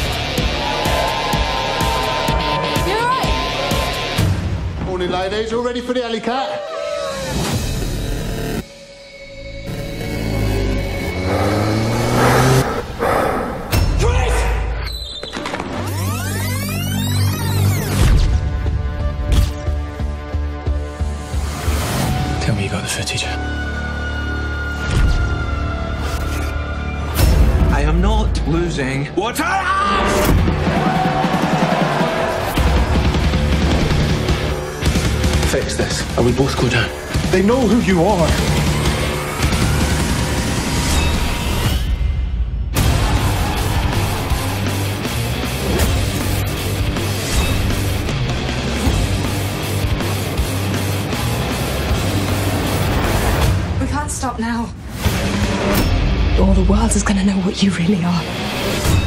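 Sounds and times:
trailer music: 0.0 - 6.2, 7.0 - 59.0
rising whoosh: 10.9 - 13.8.

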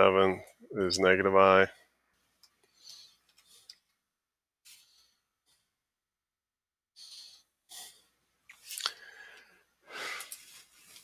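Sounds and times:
person breathing: 2.6 - 6.1, 6.9 - 11.0.

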